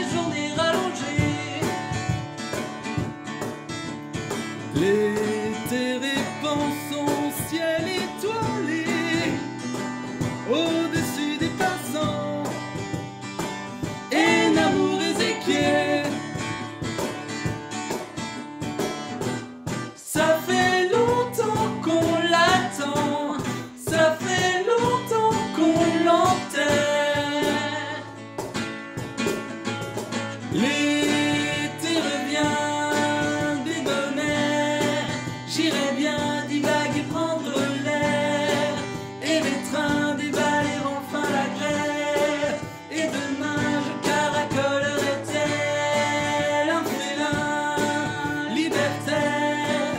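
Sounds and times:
acoustic guitar strumming: 0:00.0 - 0:49.9
cajon beat: 0:00.0 - 0:49.9
two men singing in harmony: 0:10.5 - 0:12.6, 0:13.8 - 0:16.5, 0:30.5 - 0:49.9.

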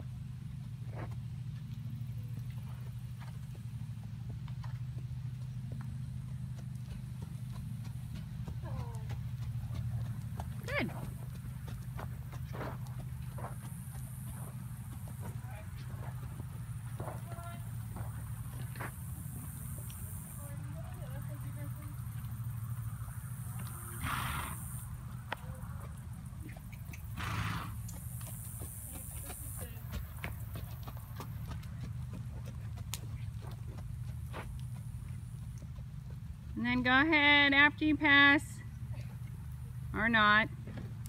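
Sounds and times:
steady low hum: 0:00.0 - 0:41.0
hoofbeats on sand: 0:00.1 - 0:37.2.

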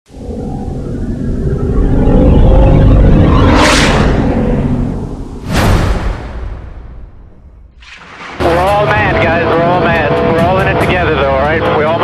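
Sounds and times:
low rumbling drone: 0:00.1 - 0:11.6.

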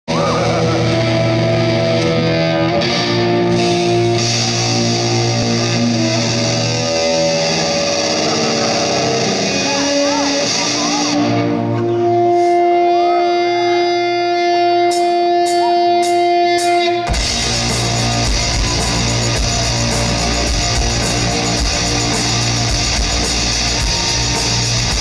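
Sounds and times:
rock band playing: 0:00.1 - 0:25.0.

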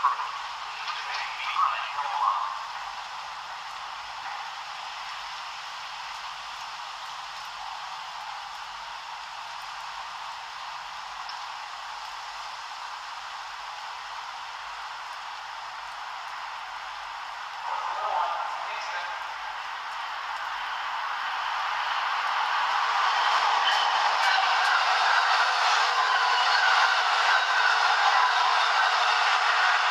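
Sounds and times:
steady static hiss: 0:00.0 - 0:29.9.

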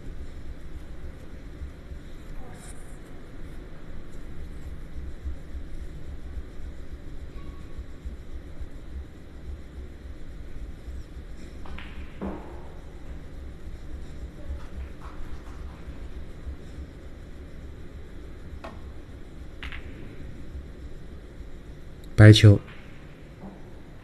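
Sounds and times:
low room rumble: 0:00.0 - 0:24.0.

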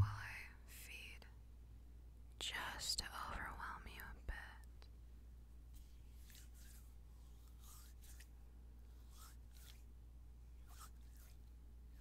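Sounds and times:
woman whispering: 0:00.0 - 0:01.4, 0:02.4 - 0:04.7
steady low hum: 0:00.0 - 0:05.7.

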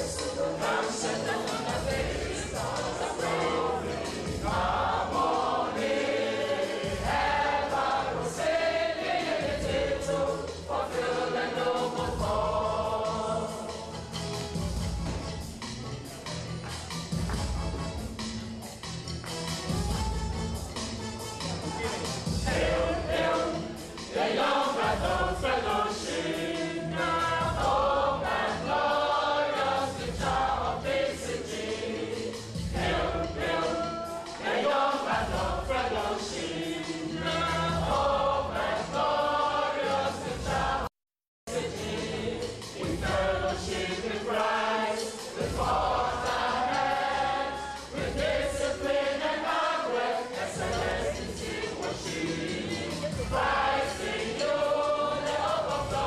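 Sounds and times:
mixed choir singing gospel: 0:00.0 - 0:17.9, 0:21.8 - 0:40.9, 0:41.5 - 0:56.0
low musical accompaniment: 0:00.0 - 0:40.9, 0:41.5 - 0:56.0.

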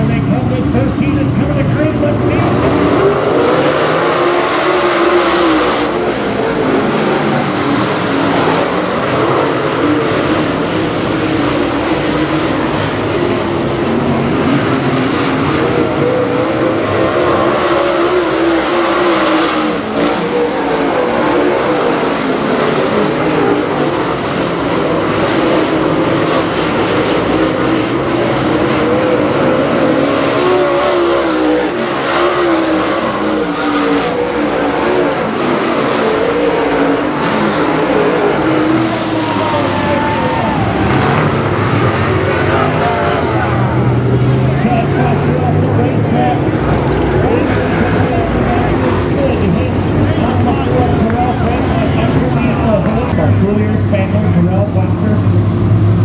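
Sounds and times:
race car engines running hard: 0:00.0 - 0:56.0.

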